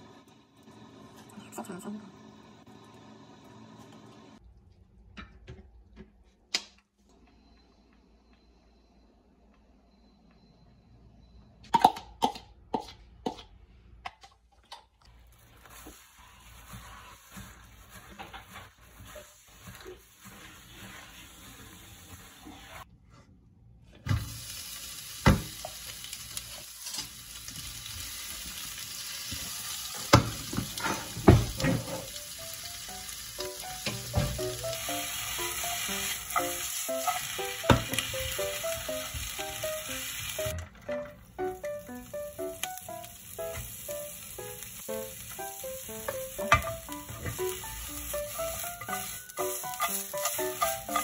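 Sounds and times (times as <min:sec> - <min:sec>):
onions sizzling in hot oil: 0:15.2 - 0:22.8, 0:24.1 - 0:40.6, 0:41.4 - 0:51.0
music with plucked notes: 0:33.4 - 0:51.0.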